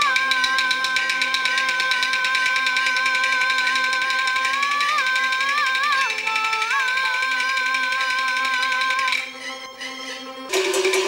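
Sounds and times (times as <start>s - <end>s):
person singing long opera note: 0.0s - 9.6s
pulsing instrumental accompaniment: 9.0s - 11.0s.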